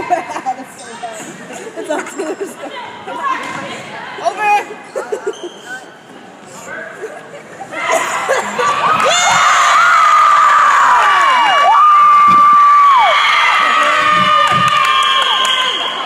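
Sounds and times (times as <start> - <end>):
crowd cheering and screaming: 7.8 - 16.0.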